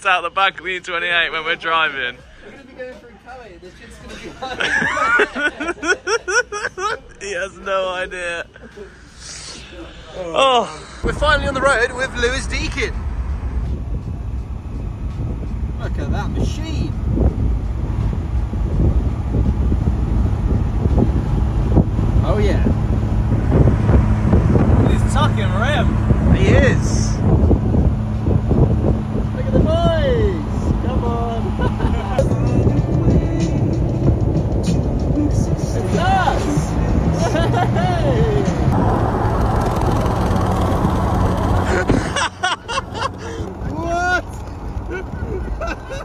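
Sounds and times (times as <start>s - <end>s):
car road and wind rumble: 4.4s - 46.0s
low engine hum: 8.2s - 46.0s
wind buffeting microphone: 10.9s - 46.0s.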